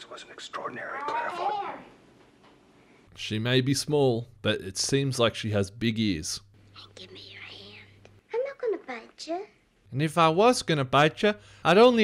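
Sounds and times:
woman speaking: 6.8 - 9.4.

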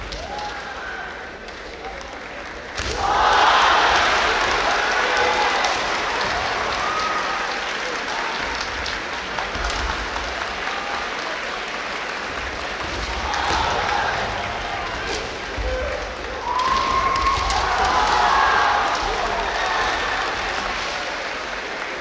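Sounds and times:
audience applause in a hall: 0.0 - 22.0.

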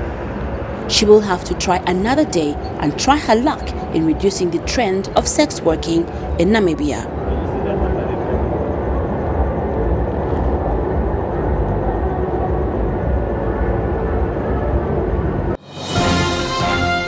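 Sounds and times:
low rumble of vehicles: 0.0 - 15.6
indistinct voices: 0.8 - 15.5.

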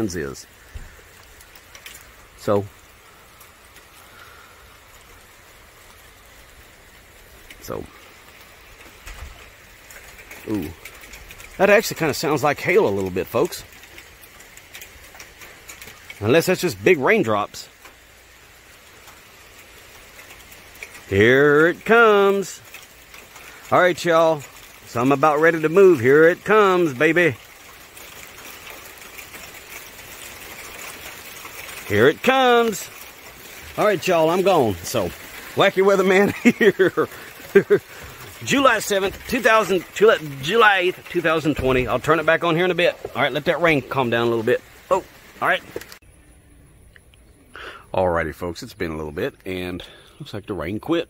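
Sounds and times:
raindrops ticking: 0.0 - 51.0
steady rain hiss: 0.0 - 51.0.

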